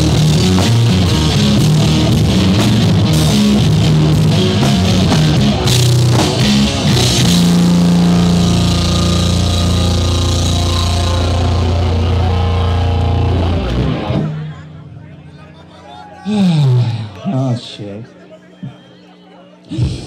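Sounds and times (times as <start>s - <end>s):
drum kit: 0.0s - 14.4s
punk rock band playing live: 0.0s - 14.7s.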